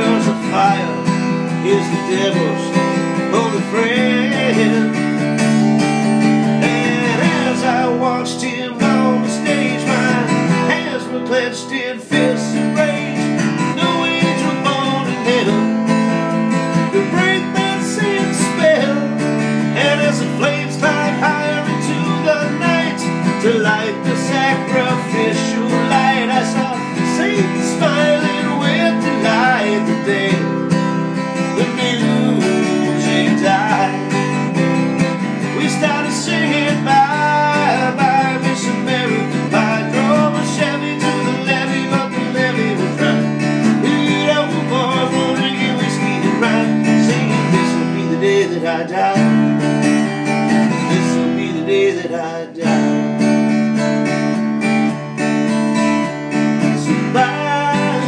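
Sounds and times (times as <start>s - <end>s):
acoustic guitar strummed: 0.0s - 58.0s.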